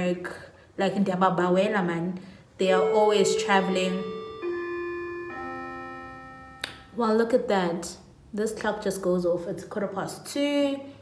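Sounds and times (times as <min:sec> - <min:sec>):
clock chiming: 0:02.6 - 0:07.0.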